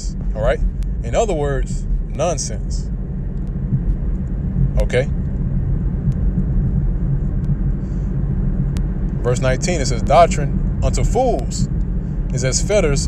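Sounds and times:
low rumble: 0:00.0 - 0:13.0
person speaking word: 0:04.8 - 0:05.1.

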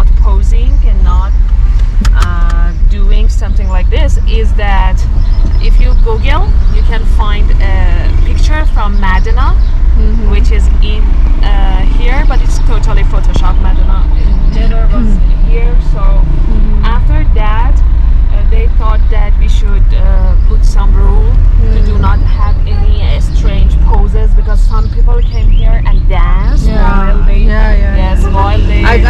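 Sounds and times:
women talking: 0:00.0 - 0:01.3, 0:02.0 - 0:29.0
car cabin rumble: 0:00.0 - 0:29.0.

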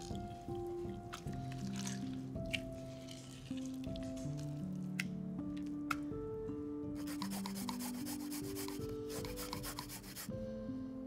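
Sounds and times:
water drips: 0:00.0 - 0:05.1.

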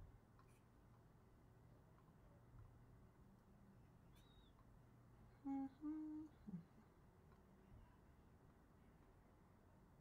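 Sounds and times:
person humming: 0:05.5 - 0:06.6.

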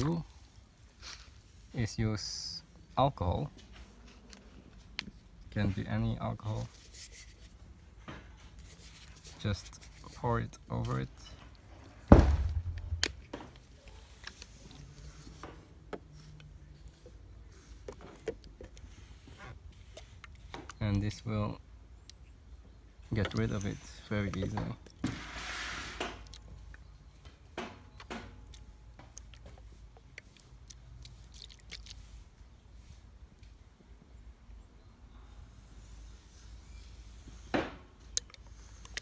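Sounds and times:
fingertip rubbing wet paint: 0:08.6 - 0:11.3, 0:38.1 - 0:39.0.

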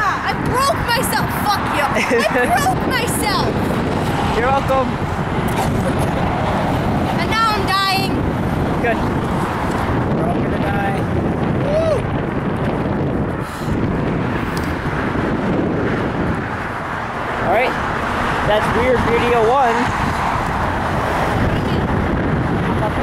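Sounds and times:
highway traffic passing: 0:00.0 - 0:23.0
wind on microphone: 0:00.0 - 0:23.0.

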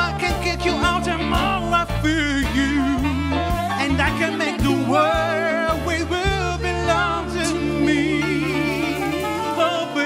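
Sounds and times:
bass line: 0:00.0 - 0:10.0
drums: 0:00.0 - 0:10.0
electric guitar: 0:00.0 - 0:10.0
person singing with vibrato: 0:00.0 - 0:10.0
saxophone: 0:00.0 - 0:10.0.

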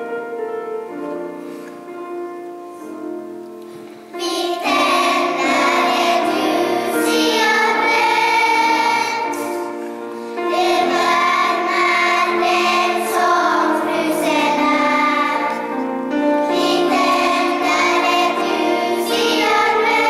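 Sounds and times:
children's choir singing: 0:04.1 - 0:20.0.

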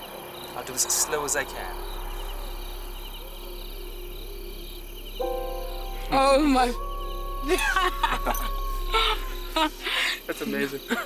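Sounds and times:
crickets chirping: 0:00.0 - 0:11.0
sustained music chord: 0:00.0 - 0:11.0.

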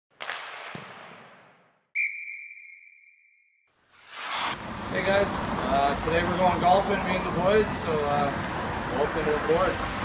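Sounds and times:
sudden swoosh: 0:03.8 - 0:04.7.

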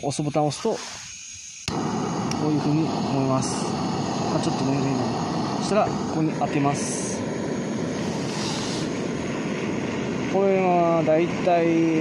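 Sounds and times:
gas torch hissing: 0:00.0 - 0:12.0.

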